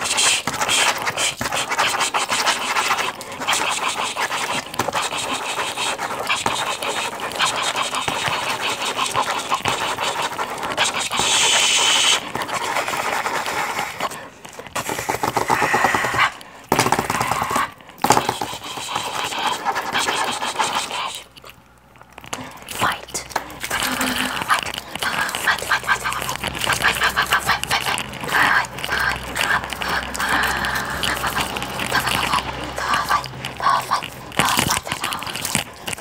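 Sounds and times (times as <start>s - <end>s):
pen scribbling on paper: 0.0s - 21.4s, 22.4s - 36.0s.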